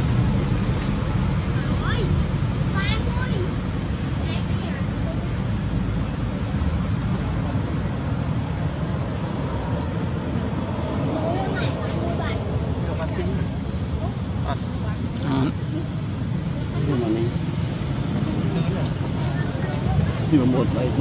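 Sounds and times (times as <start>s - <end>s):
low outdoor rumble: 0.0s - 21.0s
faint voices: 10.4s - 21.0s.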